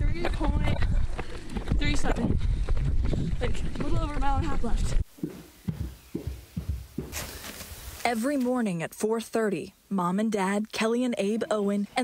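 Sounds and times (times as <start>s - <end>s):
soft low thumps: 0.0s - 7.5s.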